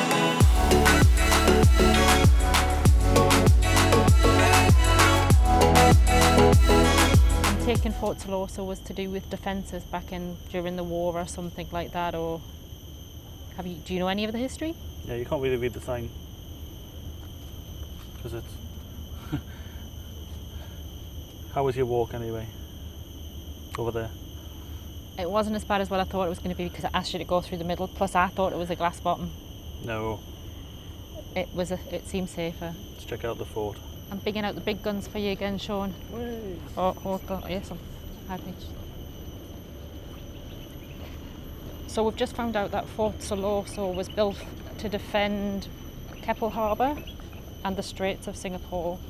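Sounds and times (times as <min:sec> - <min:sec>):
high-pitched insect chorus: 0:00.0 - 0:49.0.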